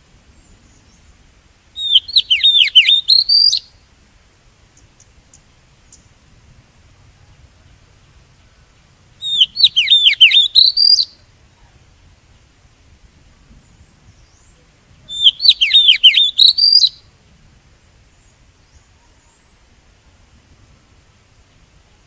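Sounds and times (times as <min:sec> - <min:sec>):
bird singing whistled notes: 0:01.8 - 0:03.8, 0:09.2 - 0:11.3, 0:13.6 - 0:17.1, 0:18.1 - 0:19.7.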